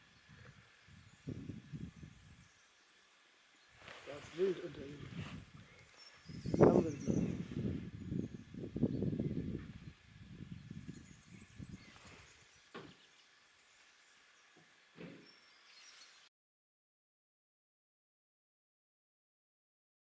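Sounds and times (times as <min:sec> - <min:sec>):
wind buffeting microphone: 0:00.0 - 0:02.5, 0:03.8 - 0:12.5.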